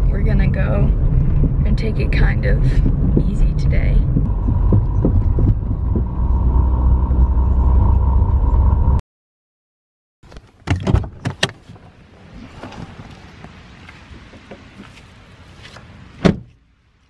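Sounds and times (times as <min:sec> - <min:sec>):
car engine and road rumble: 0:00.0 - 0:09.0, 0:10.3 - 0:17.0
sharp knocks and clicks: 0:02.8 - 0:07.3.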